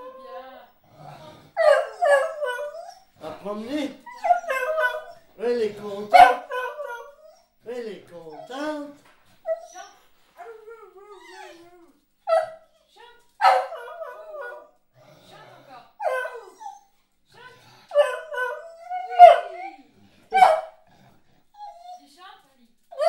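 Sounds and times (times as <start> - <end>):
dog howling and whining: 0.0 - 3.2, 4.0 - 5.3, 6.2 - 7.6, 8.3 - 12.7, 13.4 - 14.8, 16.0 - 16.9, 17.9 - 20.6, 21.5 - 22.1.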